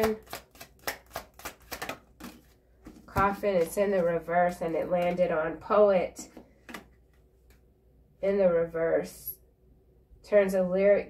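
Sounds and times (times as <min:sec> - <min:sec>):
cards being shuffled: 0:00.0 - 0:05.3.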